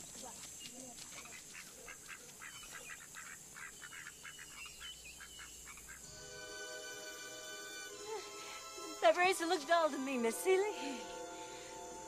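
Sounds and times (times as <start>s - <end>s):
faint bird calls: 0.6s - 6.1s
music with held notes: 6.0s - 12.0s.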